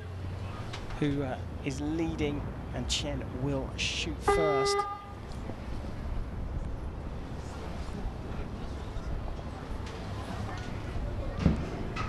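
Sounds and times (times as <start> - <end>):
arena background murmur: 0.0 - 12.0.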